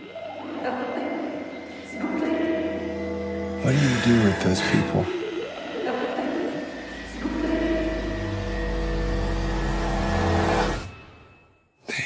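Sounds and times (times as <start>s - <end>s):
film trailer score low notes: 0.0s - 12.0s
person speaking: 3.6s - 5.3s.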